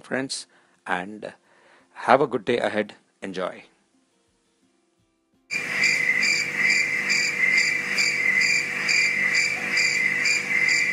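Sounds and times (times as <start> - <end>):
crickets chirping: 5.5 - 10.9.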